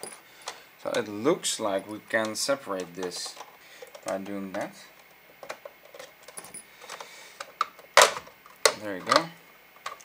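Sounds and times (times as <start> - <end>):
plastic clicks and scrapes: 5.4 - 10.0
plastic case snapping: 6.9 - 10.0.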